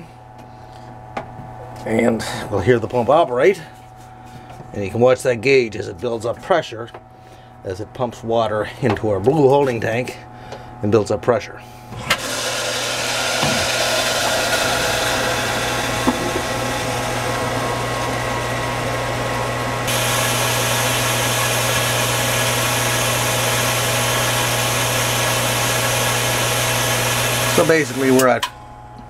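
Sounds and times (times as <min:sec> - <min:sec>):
water pump motor humming: 0:11.9 - 0:29.0.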